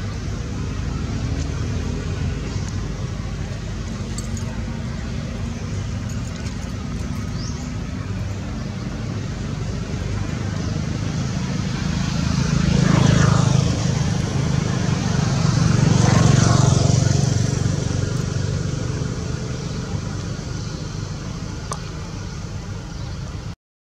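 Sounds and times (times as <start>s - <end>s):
motor vehicles passing: 0.0s - 23.6s
steady low engine hum: 0.0s - 23.6s.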